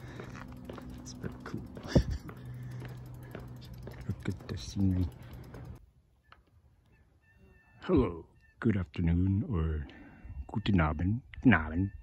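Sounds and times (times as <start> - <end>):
bicycle clicking and rattling: 0.0 - 5.8.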